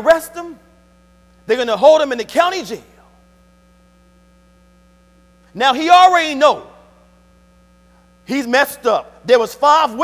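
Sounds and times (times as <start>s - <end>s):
faint electrical mains hum: 0.0s - 10.0s.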